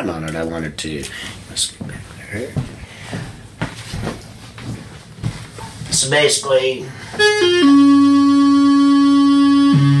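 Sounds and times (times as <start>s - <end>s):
low electrical hum: 0.0s - 10.0s
soft footsteps: 1.6s - 6.2s.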